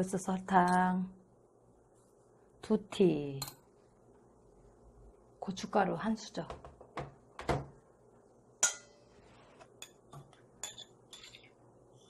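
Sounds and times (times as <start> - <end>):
metal spoon clinking on bowl: 10.6 - 11.5.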